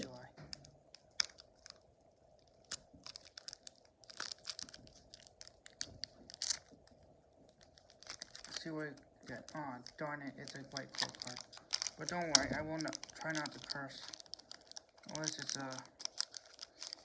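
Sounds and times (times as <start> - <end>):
faint steady hum: 0.0 - 17.0
foil wrapper crinkling and tearing: 0.0 - 17.0.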